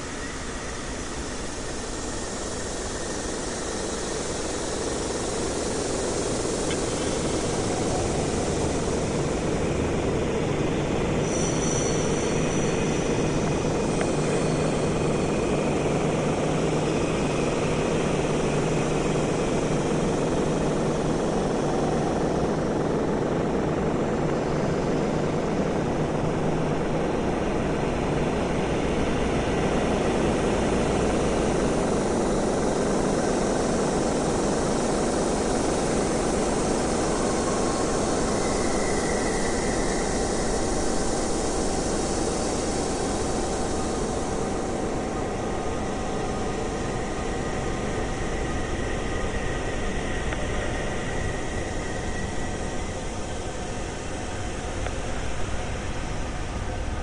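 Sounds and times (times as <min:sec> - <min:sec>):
dense noise drone: 0:00.0 - 0:57.0.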